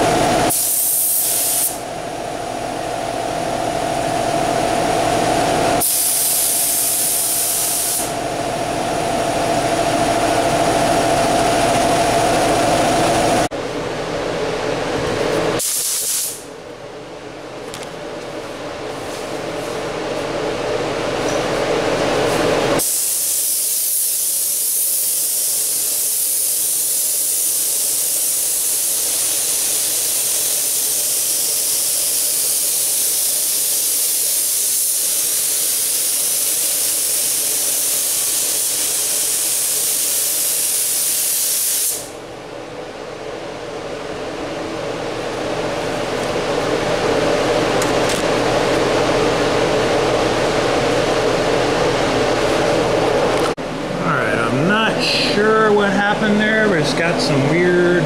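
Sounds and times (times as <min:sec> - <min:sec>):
steady machine hum: 0:00.0 - 0:58.0
paint spray gun hissing: 0:00.5 - 0:01.8, 0:05.8 - 0:08.2, 0:15.6 - 0:16.4, 0:22.8 - 0:42.1.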